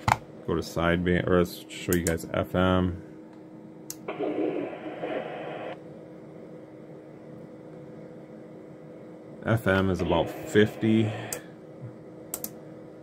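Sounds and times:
faint steady hum: 0.0s - 13.0s
radio speaker hiss: 4.1s - 5.8s, 9.8s - 11.5s.

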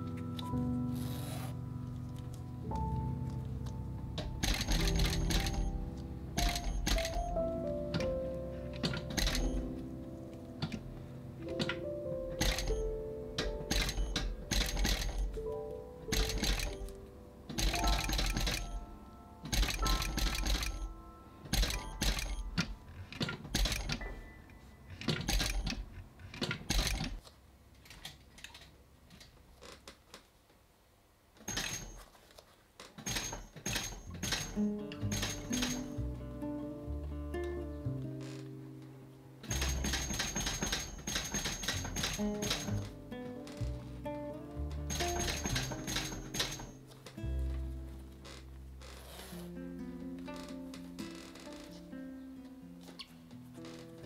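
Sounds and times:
soft background music: 0.0s - 27.2s, 33.1s - 54.0s
sewing machine stitching leather: 4.4s - 5.7s, 6.4s - 7.2s, 8.8s - 9.6s, 12.4s - 12.8s, 13.4s - 15.3s, 16.1s - 16.9s, 17.5s - 18.8s, 19.5s - 20.9s, 21.5s - 24.1s, 24.9s - 27.2s, 31.4s - 32.2s, 32.8s - 36.0s, 39.4s - 43.0s, 44.9s - 46.8s, 48.2s - 49.5s.

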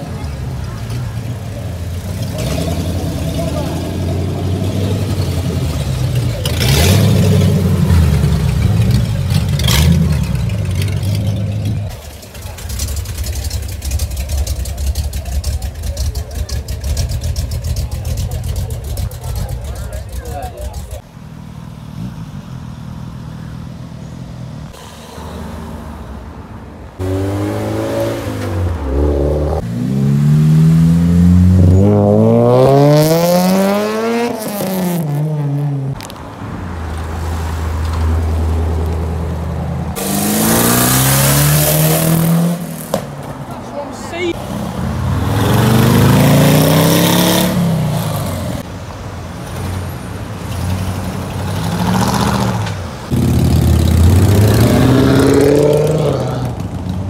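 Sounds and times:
car engines running: 0.0s - 57.0s
car engine revving up: 2.0s - 12.0s, 27.0s - 36.1s, 39.4s - 43.0s, 44.3s - 48.7s, 50.5s - 57.0s.

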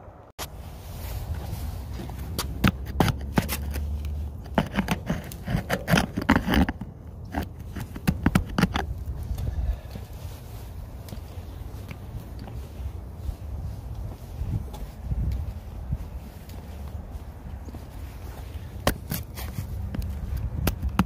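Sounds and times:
steady low rumble: 0.0s - 3.0s, 6.8s - 21.0s.

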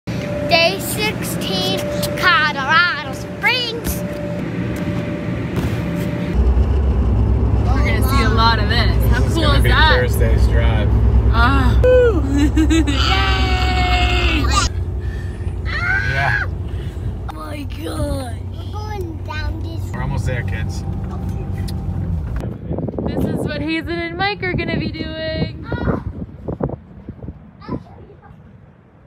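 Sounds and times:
car cabin road noise: 0.1s - 28.6s
children shouting excitedly: 12.9s - 14.7s, 15.6s - 16.5s.

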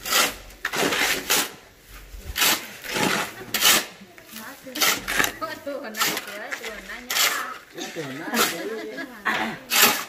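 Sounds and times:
shovel scraping wet cement: 0.0s - 10.0s.

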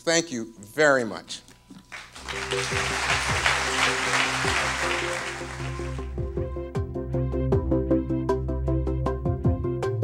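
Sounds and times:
audience applauding: 1.9s - 6.4s
instrumental music: 2.1s - 8.1s.

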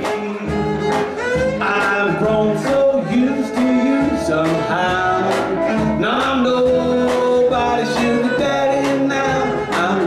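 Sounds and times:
western swing band playing: 0.0s - 10.0s.

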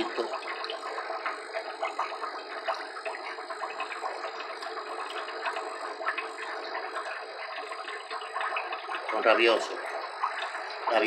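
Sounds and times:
water splashing and dripping: 0.0s - 11.0s.

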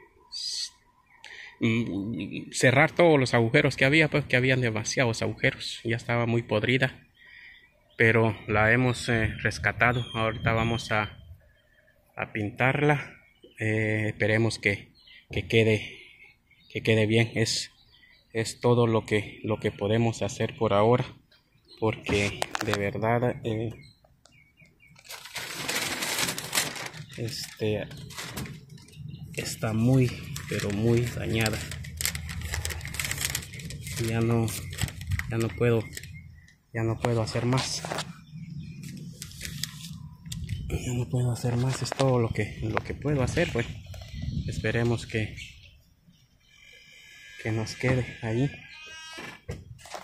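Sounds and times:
man talking: 1.6s - 7.0s, 8.0s - 11.2s, 12.2s - 16.0s, 18.4s - 21.2s, 21.8s - 23.8s, 27.1s - 28.1s, 29.3s - 31.9s, 33.8s - 36.0s, 36.7s - 38.1s, 40.7s - 43.8s, 44.4s - 45.6s, 47.4s - 48.6s
high bird chirp: 7.0s - 18.5s, 19.3s - 49.9s
breeze rushing through trees: 25.0s - 46.2s.

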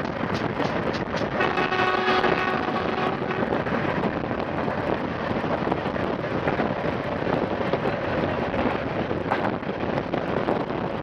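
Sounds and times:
train running noise: 0.0s - 11.0s
wind buffeting microphone: 0.0s - 11.0s.

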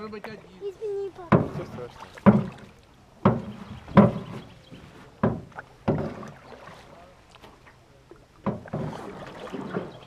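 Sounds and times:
paddle knocking metal canoe hull: 1.2s - 6.8s, 8.4s - 10.0s.

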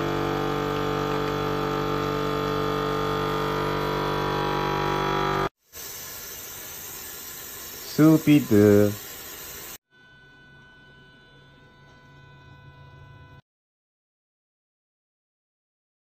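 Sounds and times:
vacuum sealer pump motor humming: 0.0s - 5.5s
faint steady hiss: 5.7s - 9.8s.

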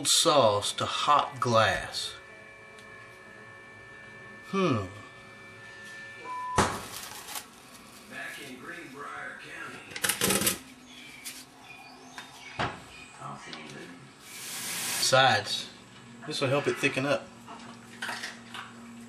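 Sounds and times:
rising hiss: 14.2s - 15.2s.

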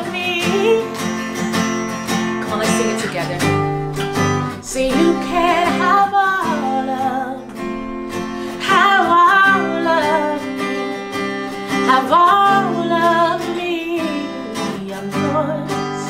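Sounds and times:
acoustic guitar strumming: 0.0s - 16.0s
woman singing: 0.0s - 16.0s.

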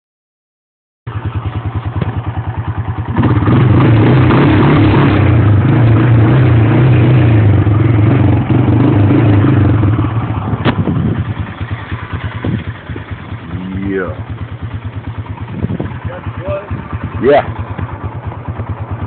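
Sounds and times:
atv engine idling and revving: 1.1s - 19.0s.

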